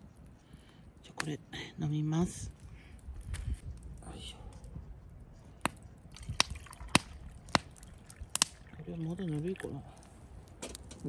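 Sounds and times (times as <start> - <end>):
wood fire popping: 0.0 - 11.0
water pouring into metal cup: 6.2 - 7.4, 8.0 - 9.8.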